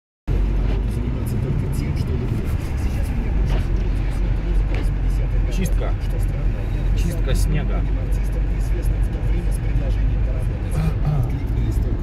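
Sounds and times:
car engine rumble: 0.3 - 12.0
road noise: 0.3 - 12.0.

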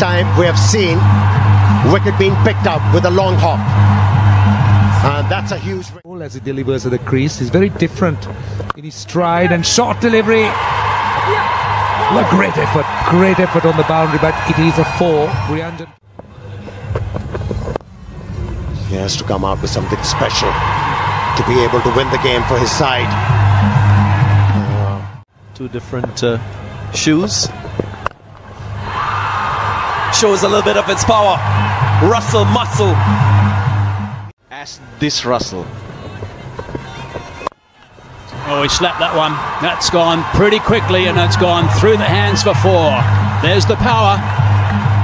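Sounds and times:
background music: 0.0 - 27.6, 28.2 - 34.3, 38.2 - 45.0.

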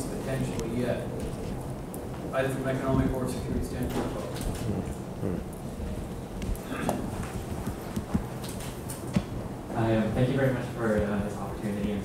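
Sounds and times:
microphone handling knocks: 6.4 - 8.4.

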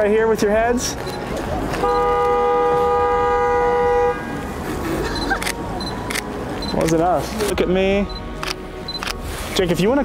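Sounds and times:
car horn honking: 1.7 - 4.4.

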